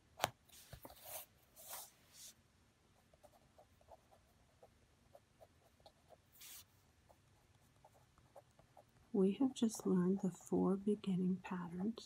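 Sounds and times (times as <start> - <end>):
pen scratching on paper: 3.1 - 9.1
paper sliding across wooden table: 6.4 - 6.7.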